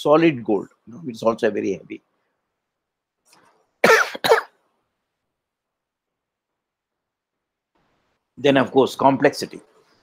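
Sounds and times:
man coughing: 3.8 - 4.6.

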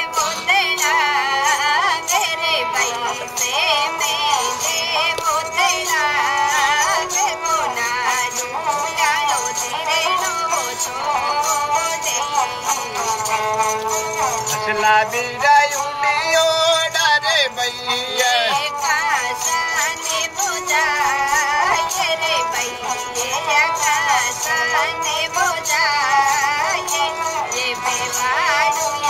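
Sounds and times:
bowed fiddle: 0.0 - 29.0
woman singing folk song: 0.0 - 29.0.

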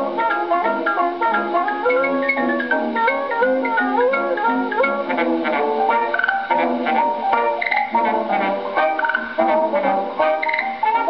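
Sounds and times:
ragtime dance band on gramophone: 0.0 - 11.0.

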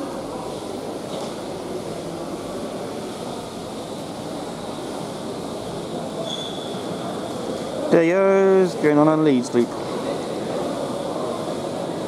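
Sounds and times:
faint wheel squeal: 6.2 - 7.0.

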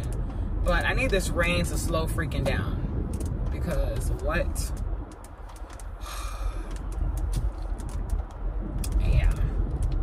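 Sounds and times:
light ticks: 0.0 - 1.4, 2.4 - 10.0
road and engine rumble: 0.0 - 10.0.

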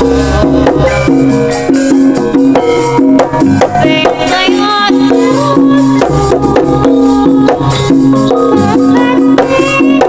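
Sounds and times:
drum strokes: 0.0 - 10.0
gongs and metallophones: 0.0 - 10.0.

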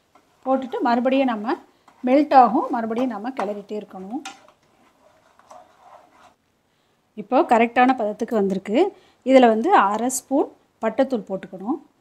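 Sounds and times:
spatula scraping frying pan: 0.0 - 6.4.

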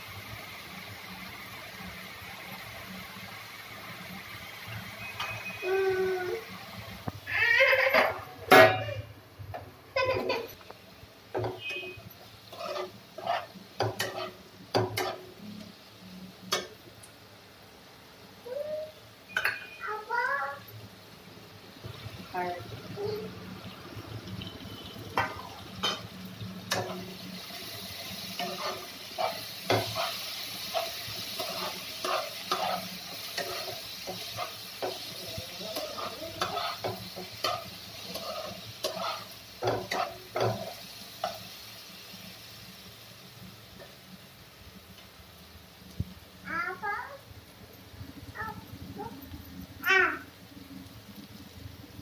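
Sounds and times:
onions sizzling in oil: 0.0 - 52.0
spatula scraping pan: 11.3 - 15.3, 28.2 - 41.4.

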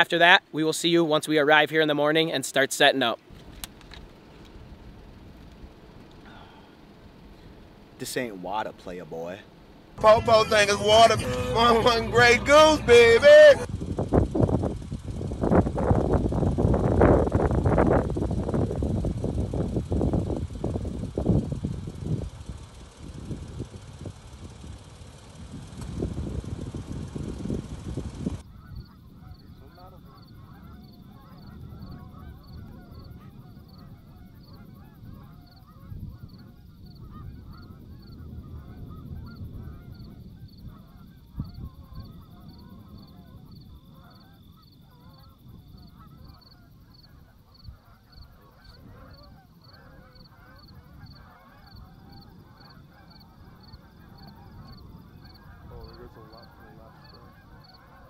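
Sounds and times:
distant geese honking: 4.0 - 58.0
high pulsing chirp: 10.0 - 33.1
wind buffeting microphone: 12.6 - 29.4, 30.0 - 46.9, 47.6 - 58.0.

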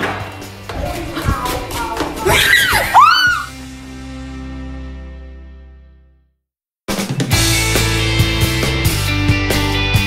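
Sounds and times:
background music: 0.0 - 6.0
person shrieking: 2.2 - 3.6.

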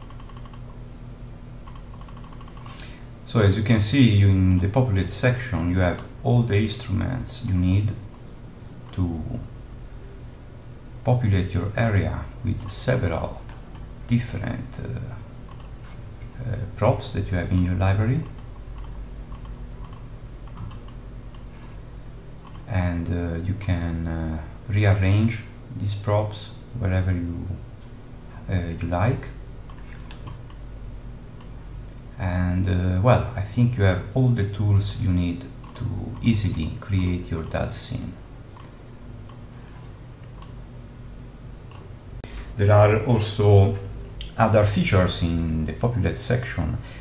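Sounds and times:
light computer clicks: 0.0 - 0.8, 1.6 - 2.8, 5.5 - 6.2, 7.4 - 9.0, 15.5 - 15.8, 17.5 - 21.5, 22.4 - 22.7, 29.6 - 30.6, 35.6 - 37.6, 38.5 - 39.4, 40.2 - 40.6, 41.7 - 41.9
faint steady hum: 0.0 - 47.0.

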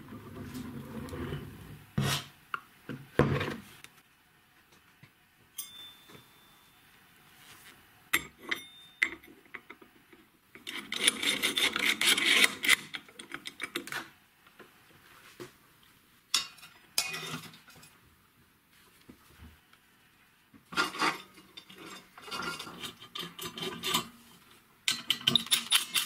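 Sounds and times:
metal parts clinking and scraping: 24.9 - 26.0.

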